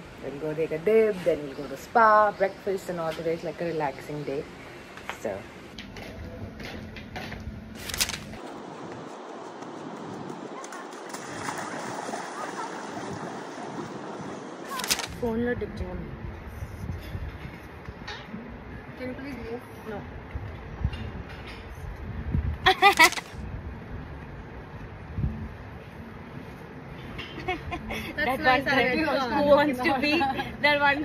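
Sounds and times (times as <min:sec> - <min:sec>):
wind rumble on microphone: 0:08.4 - 0:22.8, 0:23.4 - 0:25.8
small waves on sandy beach: 0:09.7 - 0:14.8.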